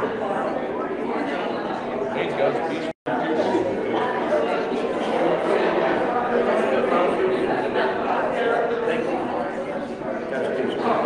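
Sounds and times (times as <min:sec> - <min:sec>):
many overlapping voices chatting: 0:00.0 - 0:11.0.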